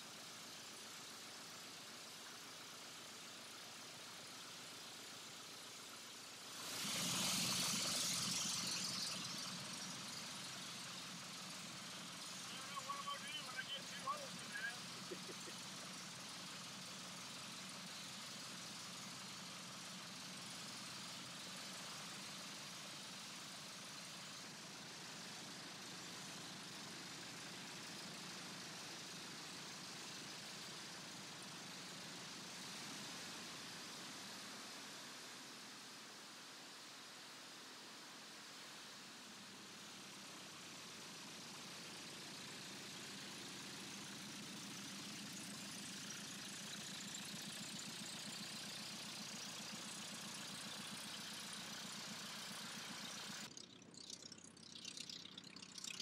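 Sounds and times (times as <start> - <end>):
propeller engine running: 6.5 - 17.8, 41.2 - 56.0.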